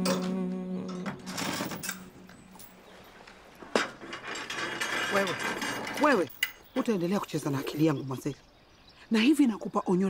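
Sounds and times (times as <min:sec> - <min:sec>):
metal sheet gate rattling: 0:01.2 - 0:02.2, 0:03.6 - 0:06.6.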